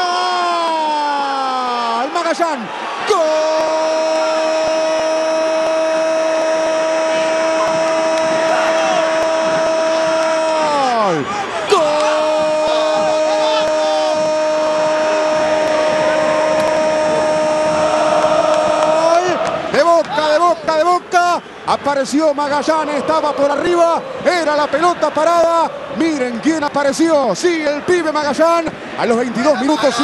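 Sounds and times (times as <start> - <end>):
commentator's drawn-out goal cry: 0.0 - 21.4.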